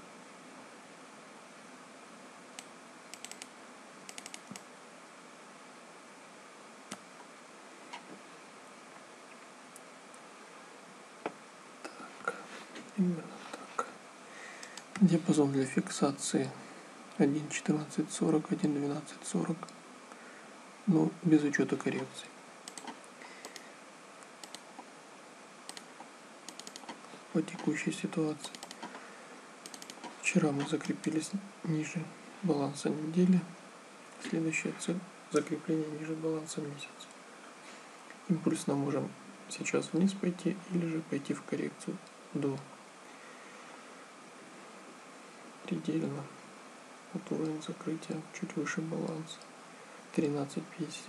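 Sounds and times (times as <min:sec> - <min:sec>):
faint steady hiss: 0:00.0 - 0:51.0
keyboard and mouse clicks: 0:02.6 - 0:04.7, 0:22.7 - 0:23.7, 0:24.3 - 0:24.9, 0:25.7 - 0:27.0, 0:28.4 - 0:29.0, 0:29.6 - 0:30.7
keyboard keys clicking: 0:04.1 - 0:04.6, 0:26.5 - 0:27.0, 0:28.4 - 0:28.9, 0:29.7 - 0:30.1.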